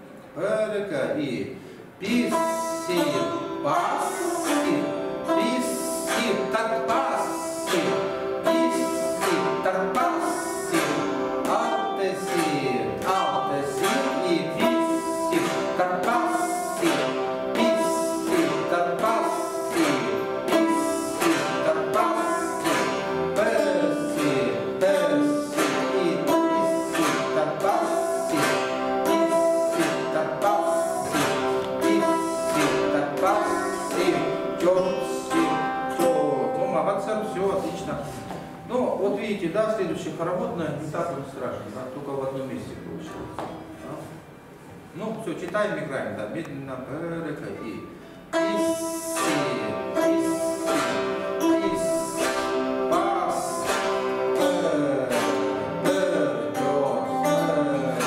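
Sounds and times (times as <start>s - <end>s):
plucked zithers: 2.0s - 41.8s, 46.4s - 58.0s.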